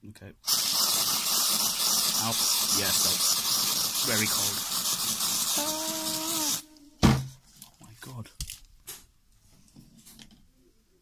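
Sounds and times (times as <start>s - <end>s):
aerosol spray hissing: 0.4s - 6.7s
person humming: 5.6s - 7.0s
sharp knock: 7.0s - 7.4s.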